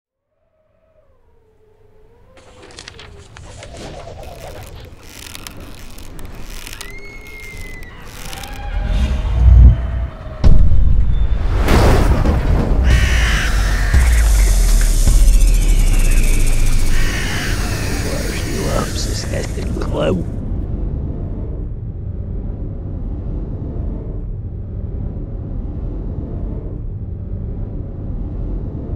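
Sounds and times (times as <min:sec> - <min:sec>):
high falling bird-like cries: 0:00.4 - 0:10.5, 0:12.8 - 0:20.3
heavy boom: 0:09.1 - 0:17.2
building swell: 0:12.9 - 0:20.4
low sustained rumble: 0:13.0 - 0:20.8.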